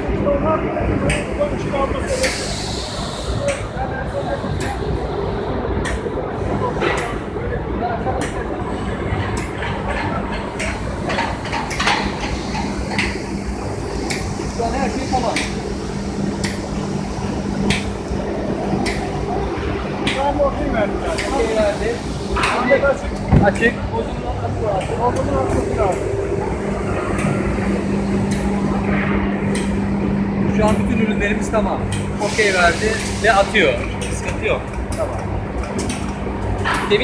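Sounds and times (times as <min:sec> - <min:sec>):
people talking: 0:00.0 - 0:11.2, 0:14.4 - 0:15.7, 0:18.6 - 0:37.0
factory machinery humming: 0:00.0 - 0:37.0
conveyor clicks and knocks: 0:08.2 - 0:15.7, 0:16.3 - 0:16.9, 0:17.6 - 0:19.4, 0:20.0 - 0:21.7, 0:24.5 - 0:32.2.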